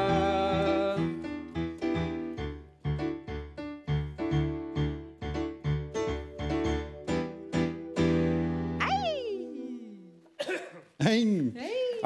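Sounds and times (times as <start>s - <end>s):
swooping pitched tone: 8.8s - 10.2s.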